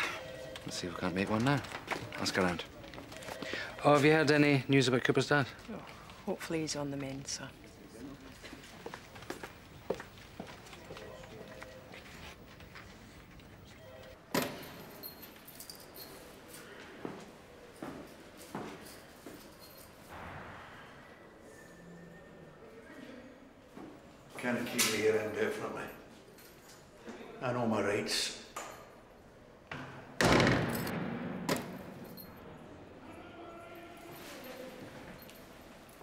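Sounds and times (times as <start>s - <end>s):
faint high metallic jingle: 14.6s - 16.8s, 18.0s - 20.1s, 31.7s - 36.0s.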